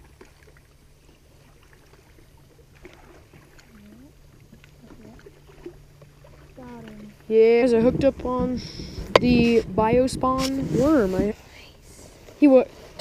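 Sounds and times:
quiet hum: 0:00.0 - 0:13.0.

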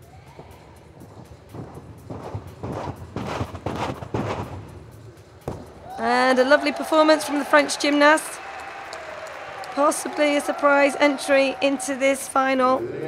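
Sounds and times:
thuds on tumbling track: 0:01.2 - 0:05.7.

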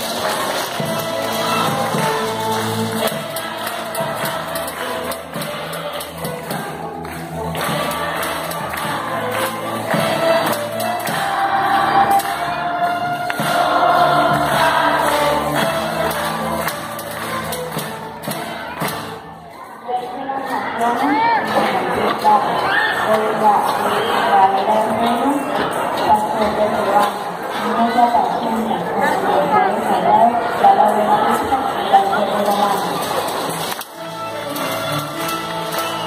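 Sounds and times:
string orchestra playing: 0:00.0 - 0:19.2, 0:33.7 - 0:36.0.

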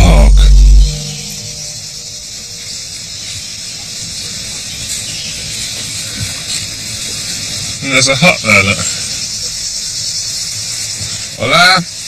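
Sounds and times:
insect chorus hiss: 0:00.0 - 0:12.0.

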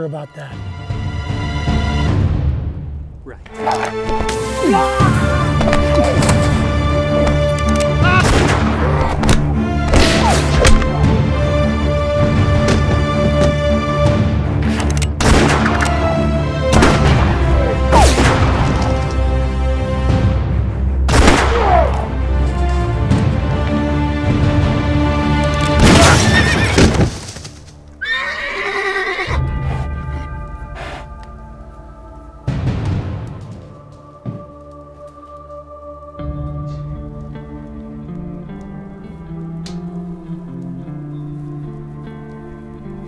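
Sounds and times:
dramatic film score: 0:00.0 - 0:43.0
horse whinnying: 0:25.9 - 0:26.9, 0:28.0 - 0:29.9.

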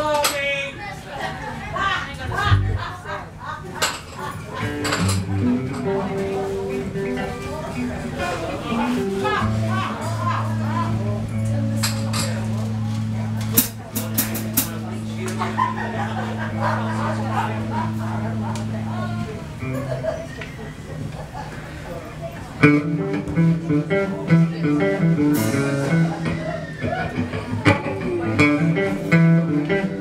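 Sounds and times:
voices chattering: 0:00.0 - 0:30.0
amplified instrument notes: 0:02.4 - 0:03.0, 0:04.6 - 0:20.1, 0:22.6 - 0:30.0.

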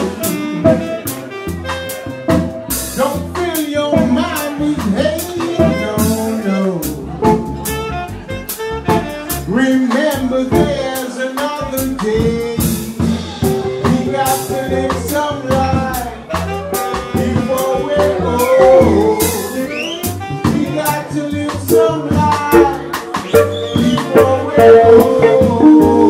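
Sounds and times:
saxophone melody: 0:00.0 - 0:11.1, 0:13.4 - 0:26.0
drum kit with cymbals: 0:00.0 - 0:26.0
walking bass line: 0:00.0 - 0:26.0.

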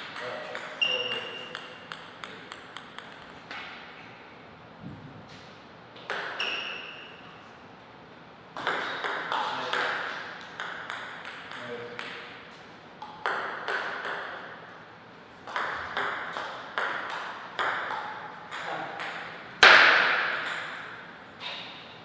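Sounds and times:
table tennis ball hits: 0:00.0 - 0:03.8, 0:06.0 - 0:07.0, 0:08.6 - 0:14.6, 0:15.4 - 0:21.8.

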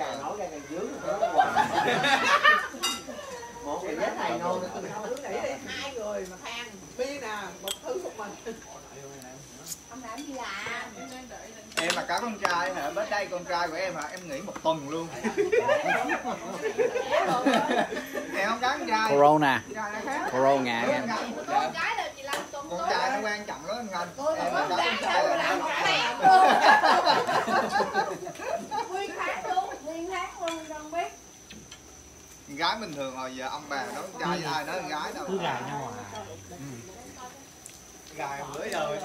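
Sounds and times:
people chattering: 0:00.0 - 0:39.0
people conversing: 0:00.0 - 0:39.0.

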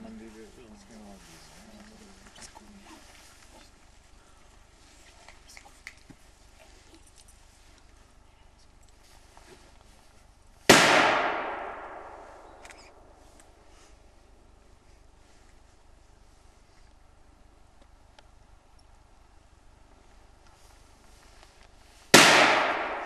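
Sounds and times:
gunshot with echo: 0:10.7 - 0:12.6, 0:22.1 - 0:23.0.

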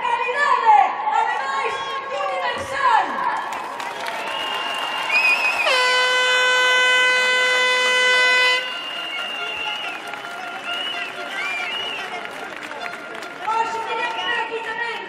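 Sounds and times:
crowd noise: 0:00.0 - 0:15.0
horn blast: 0:05.6 - 0:13.4
high whistling tones: 0:08.6 - 0:12.2.

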